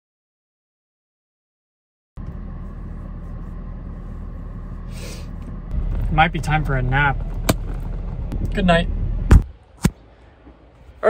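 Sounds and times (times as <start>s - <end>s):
car cabin low rumble: 2.2s - 9.8s.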